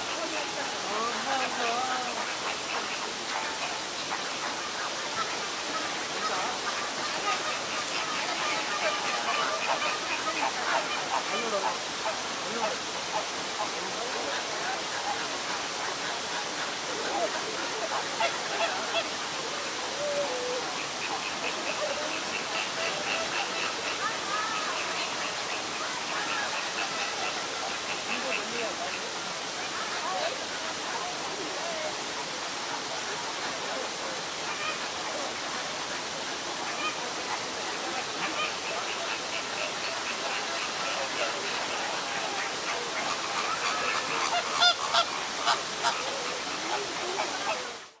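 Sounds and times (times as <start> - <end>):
flamingos honking: 0.0 - 48.0.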